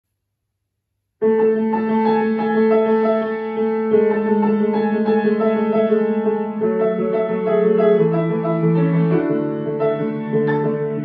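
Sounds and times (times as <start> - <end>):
grand piano melody: 1.2 - 11.0.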